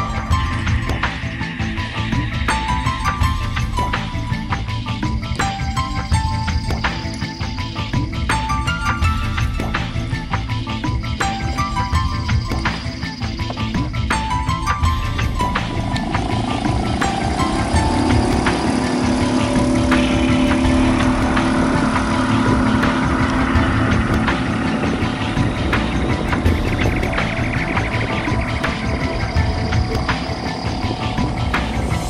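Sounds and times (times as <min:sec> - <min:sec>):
background music: 0:00.0 - 0:32.0
small outboard motor running: 0:00.0 - 0:32.0.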